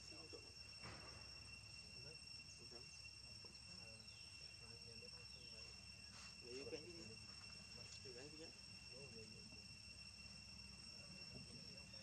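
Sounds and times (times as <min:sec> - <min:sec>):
high-pitched insect trill: 0:00.0 - 0:12.0.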